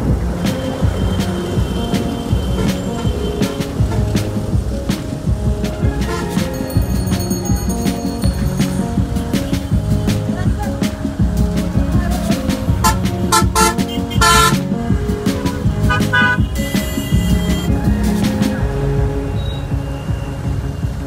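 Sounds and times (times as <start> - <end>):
background music: 0.0 - 21.0
vehicle horns honking: 12.8 - 14.6, 15.9 - 17.7.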